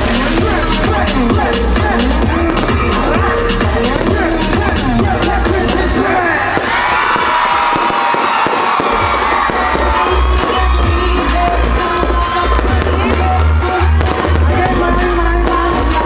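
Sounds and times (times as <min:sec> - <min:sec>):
crowd cheering: 0:00.0 - 0:16.0
live pop music: 0:00.0 - 0:16.0.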